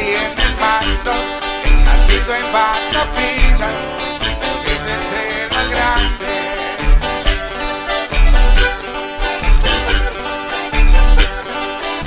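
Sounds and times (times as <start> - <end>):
heavy pulsing bass notes: 0.0 - 12.0
strummed and plucked strings: 0.0 - 12.0.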